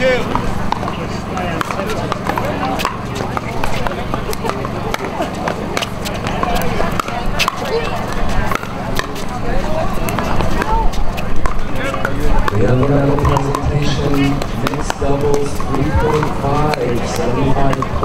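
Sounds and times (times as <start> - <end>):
hubbub of voices: 0.0 - 18.0
paddles hitting plastic ball: 10.0 - 18.0.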